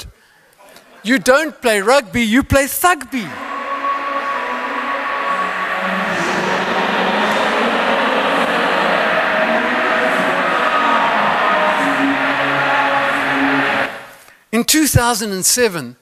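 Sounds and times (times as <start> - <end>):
audience applauding: 3.2 - 14.2
audience laughing: 3.3 - 14.1.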